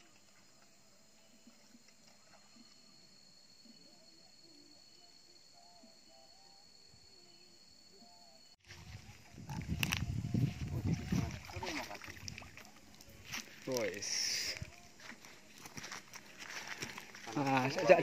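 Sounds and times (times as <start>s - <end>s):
thin steady high tone: 0.0s - 18.0s
water splashing in landing net: 11.0s - 12.8s.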